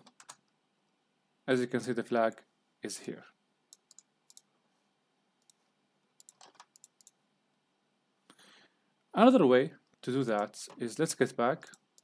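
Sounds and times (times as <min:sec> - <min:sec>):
mouse and keyboard clicks: 0:03.7 - 0:04.5, 0:06.2 - 0:07.2.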